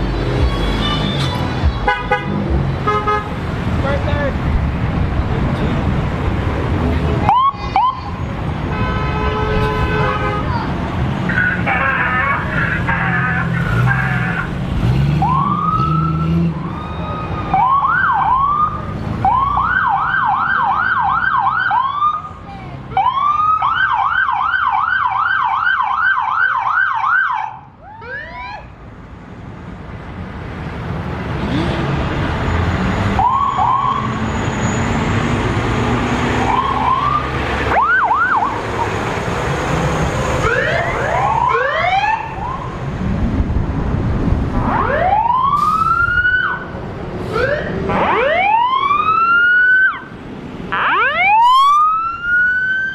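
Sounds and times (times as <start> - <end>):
vehicles rumbling past: 0.0 - 52.9
siren yelp: 7.3 - 8.2, 15.2 - 28.7, 33.2 - 34.2, 36.4 - 38.6, 40.4 - 42.8, 44.6 - 46.7, 47.3 - 50.1, 50.7 - 52.9
siren chirps: 15.2 - 22.3, 33.2 - 35.0, 36.3 - 38.6, 40.4 - 42.8, 44.6 - 46.7, 50.7 - 52.9
siren whoops: 15.2 - 22.3, 33.2 - 34.2, 36.4 - 38.6, 40.4 - 42.7, 44.6 - 46.7, 47.3 - 50.1, 50.7 - 52.9.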